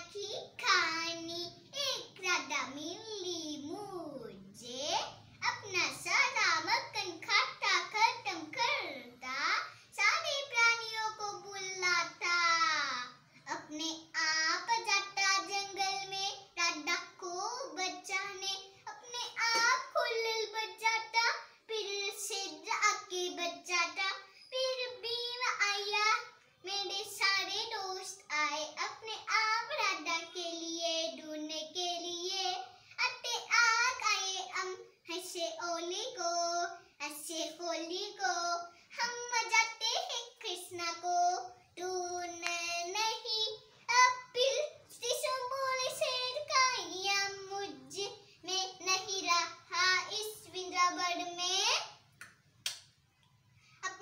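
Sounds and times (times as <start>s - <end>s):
girl singing unaccompanied: 5.6s - 52.0s.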